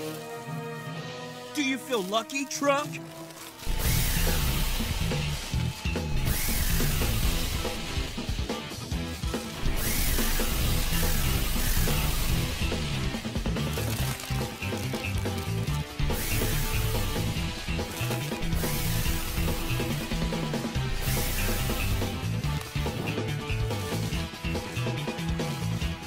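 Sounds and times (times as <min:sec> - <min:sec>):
action music with driving bass: 0:00.0 - 0:26.0
carbon dioxide sprayer hissing: 0:01.4 - 0:26.0.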